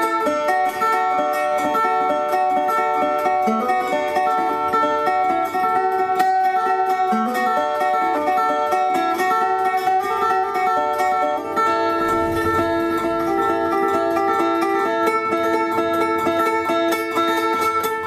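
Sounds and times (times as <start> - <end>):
fingerpicked resonator guitar: 0.0 - 18.0.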